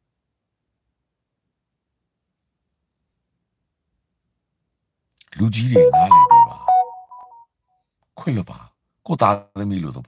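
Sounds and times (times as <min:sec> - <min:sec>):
phone alert beeping tune: 0:05.8 - 0:07.4.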